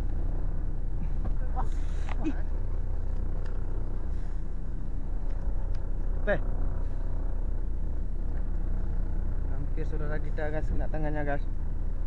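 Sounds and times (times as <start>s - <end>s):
boat engine droning: 0.0s - 12.0s.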